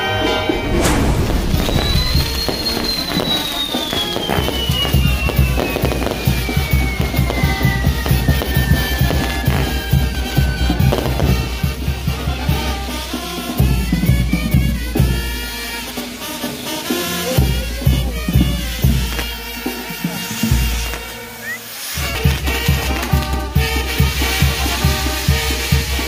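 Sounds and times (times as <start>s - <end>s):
high whistle sliding down: 0.0s - 11.2s, 20.8s - 22.2s
fireworks crackling and hissing: 0.0s - 26.0s
music with drums: 0.0s - 26.0s.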